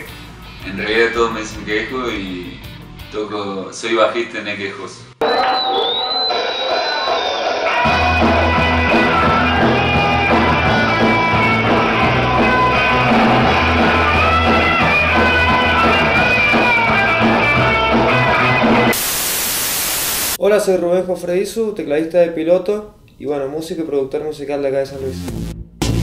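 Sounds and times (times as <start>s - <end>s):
rock band playing live: 5.2s - 18.9s.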